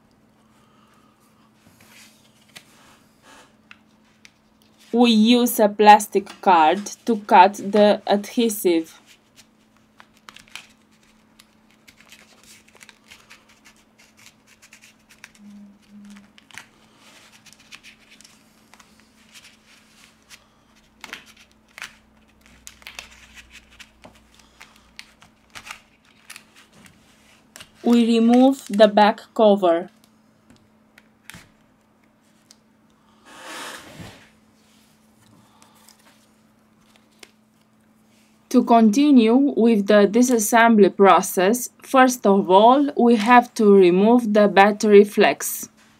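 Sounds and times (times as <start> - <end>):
steady low hum: 0.0 - 45.9
short low tones: 15.4 - 16.3.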